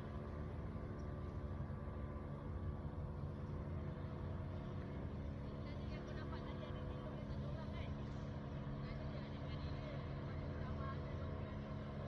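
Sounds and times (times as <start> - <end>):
vehicle engine rumble: 0.0 - 12.0.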